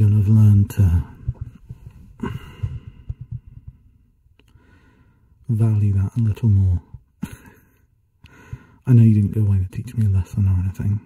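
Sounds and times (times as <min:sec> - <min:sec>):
soft low thuds: 0:00.0 - 0:04.4, 0:05.8 - 0:07.4
man breathing close to microphone: 0:01.0 - 0:05.4, 0:07.2 - 0:08.9.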